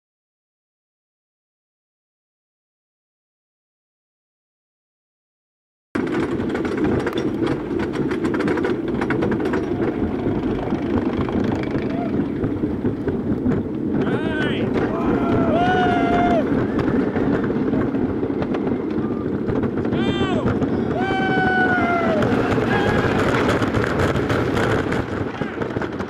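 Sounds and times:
roller coaster rumbling on wooden track: 6.0 - 26.0
riders yelling: 11.7 - 12.4, 14.0 - 17.4, 19.0 - 23.6.

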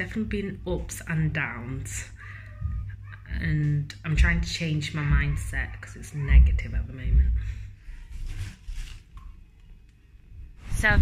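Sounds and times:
rustling handling noise: 6.4 - 9.9.

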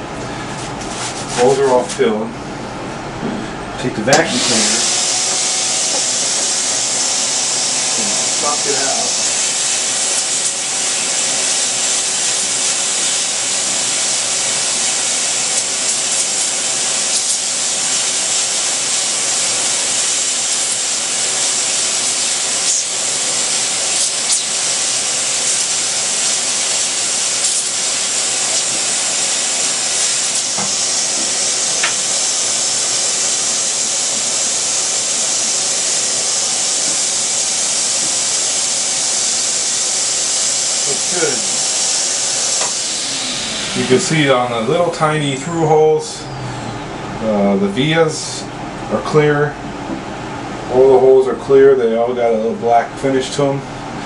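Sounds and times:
vacuum cleaner hissing: 0.0 - 1.8, 3.3 - 48.5.

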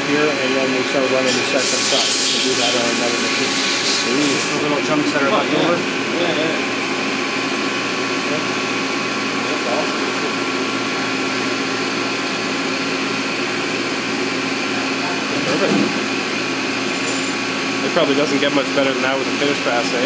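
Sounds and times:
milling machine humming and whining: 0.0 - 20.0.

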